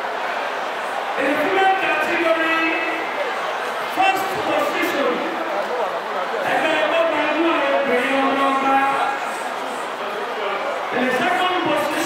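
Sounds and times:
man speaking into a microphone: 1.2 - 3.2, 3.9 - 9.4, 10.0 - 12.0.

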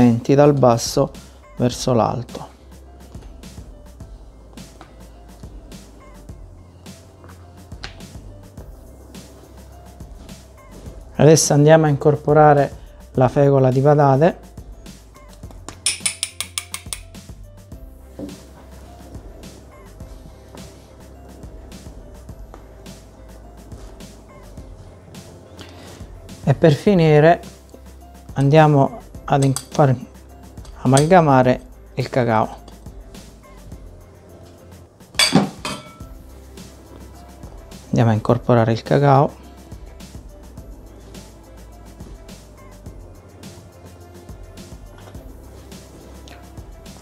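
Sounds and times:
soft background music: 0.0 - 47.0
glass jar tapping clicks: 15.7 - 17.2.

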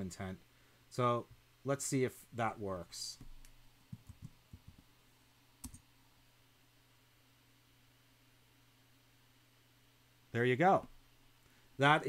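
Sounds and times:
faint low hum: 0.0 - 12.0
computer keys clicking: 3.2 - 4.8, 5.6 - 5.8.

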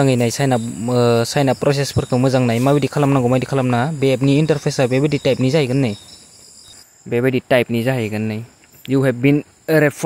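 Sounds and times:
man talking: 0.0 - 6.0, 7.0 - 10.0.

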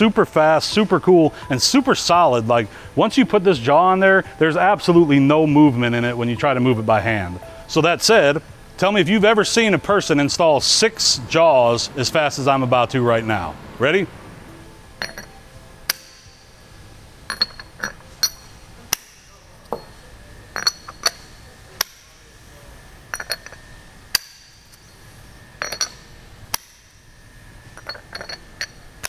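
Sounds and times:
metal vise jaws clicking and clinking: 15.0 - 15.3, 17.3 - 19.0, 27.8 - 28.8.

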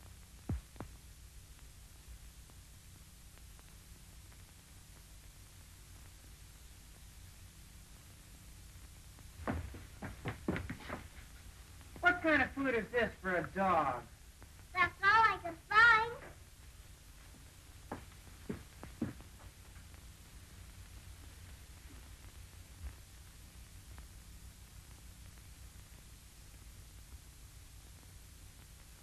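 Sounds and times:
film soundtrack hum and hiss: 0.0 - 29.0
dull thumps: 9.4 - 11.2
girl speaking sing-song: 14.7 - 16.4.

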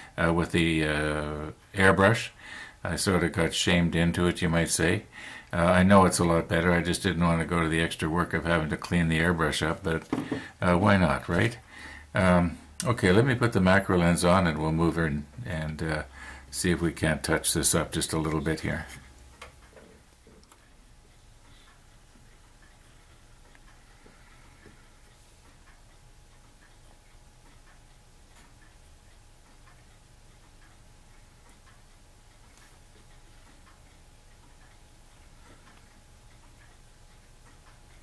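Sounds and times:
steady low hum: 0.0 - 38.0
faint small ticks and clicks: 18.0 - 38.0.

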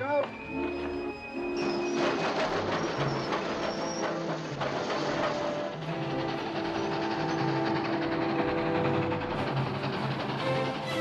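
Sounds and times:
steam train rumbling past: 0.0 - 11.0
wheels clattering: 0.2 - 11.0.

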